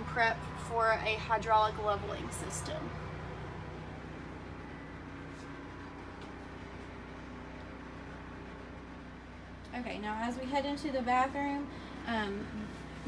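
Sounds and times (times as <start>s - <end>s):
low machine hum: 0.0s - 13.0s.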